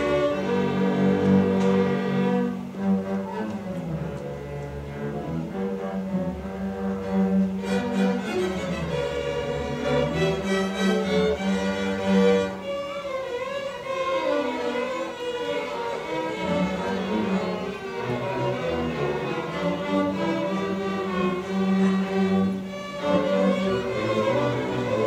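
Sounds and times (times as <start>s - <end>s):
string orchestra playing: 0.0s - 25.0s.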